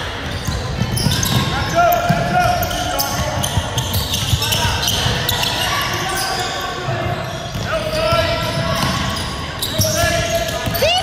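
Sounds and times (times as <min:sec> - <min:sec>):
sneakers squeaking: 0:00.0 - 0:11.0.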